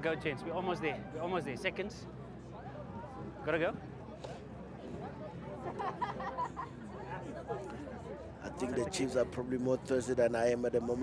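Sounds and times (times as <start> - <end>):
faint voices chattering: 0.0 - 11.0.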